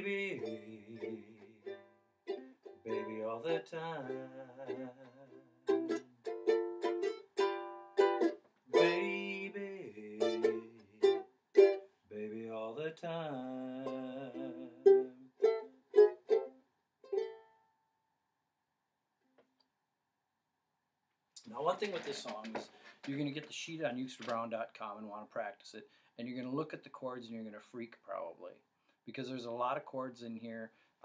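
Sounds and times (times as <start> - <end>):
ukulele strummed chords: 0.0 - 9.6, 10.2 - 11.8, 13.4 - 17.5.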